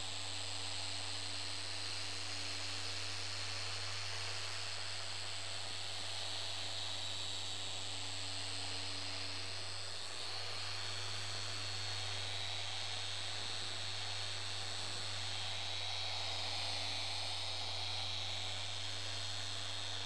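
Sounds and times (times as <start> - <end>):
electric polisher whining: 8.6 - 20.0.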